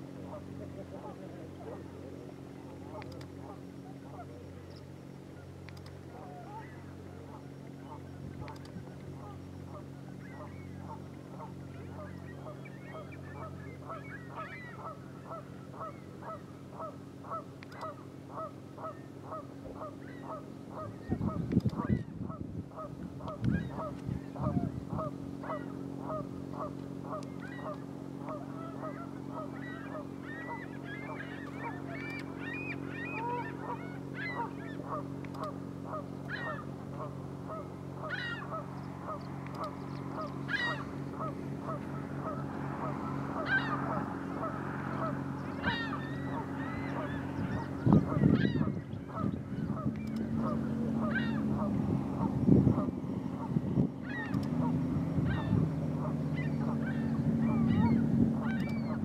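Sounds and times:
low steady hum: 0.0 - 59.0
geese honking: 9.2 - 59.0.

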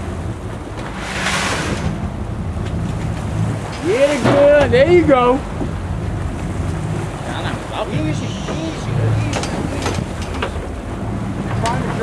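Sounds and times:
boat engine running: 0.0 - 12.0
rush of water: 0.0 - 12.0
waves washing against hull: 0.0 - 12.0
wind on microphone: 0.0 - 12.0.

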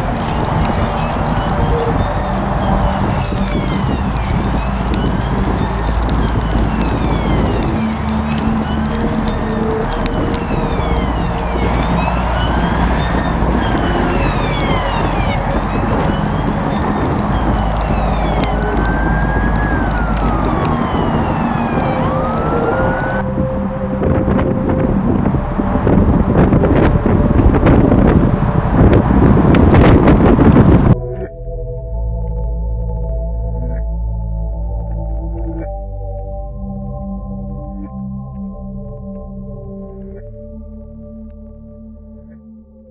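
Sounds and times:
harsh crackling: 0.0 - 31.0
emergency sirens wailing: 0.0 - 42.4
thick noisy rumble: 0.0 - 42.9.

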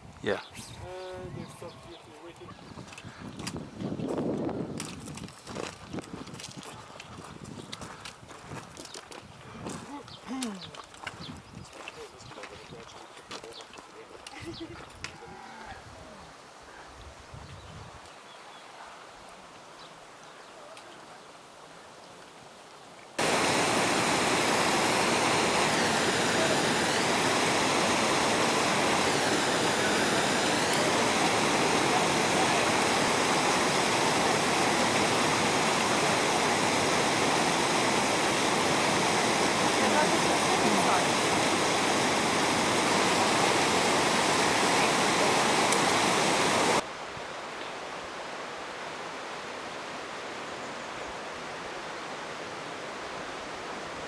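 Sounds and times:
stream rushing over rocks: 23.2 - 54.0.

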